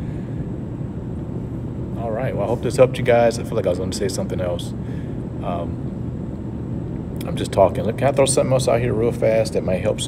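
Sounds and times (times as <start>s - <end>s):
low room rumble: 0.0s - 10.0s.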